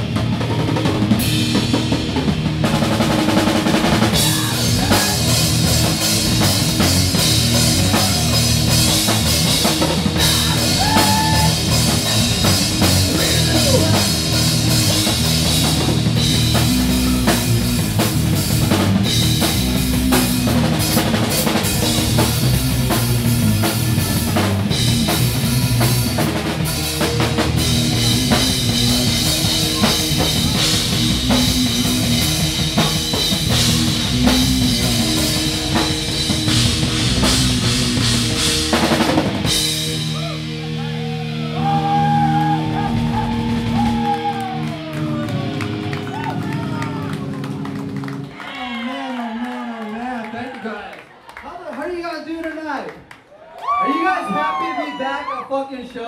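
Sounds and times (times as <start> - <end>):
live rock band playing: 0.0 - 48.4
pounding drum kit: 0.0 - 48.4.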